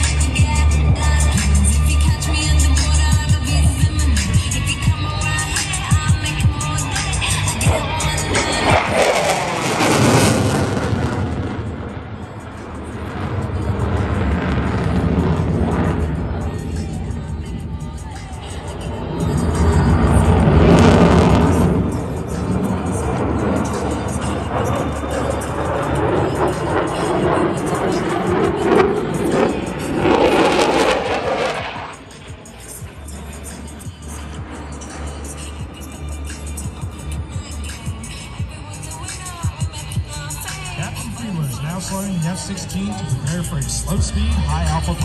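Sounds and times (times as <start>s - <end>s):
jet engine roaring overhead: 0.0s - 45.0s
music playing: 0.0s - 45.0s.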